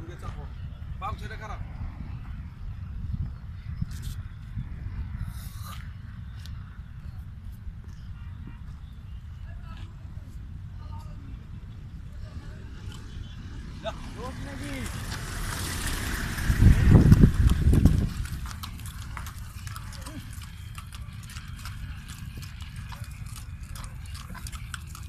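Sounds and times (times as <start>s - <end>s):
hooves clip-clopping on pavement: 13.8s - 25.0s.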